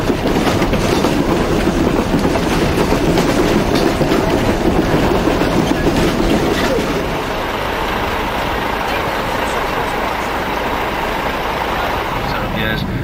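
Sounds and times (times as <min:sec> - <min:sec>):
vehicle running noise from inside: 0:00.0 - 0:13.0.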